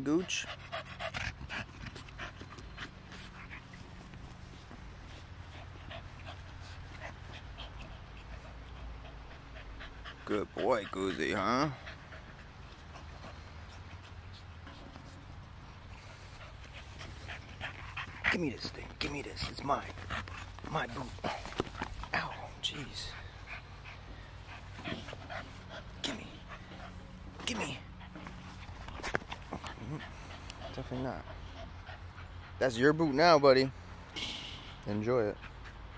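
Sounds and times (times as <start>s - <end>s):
dog panting: 0.0s - 34.1s, 34.7s - 35.9s.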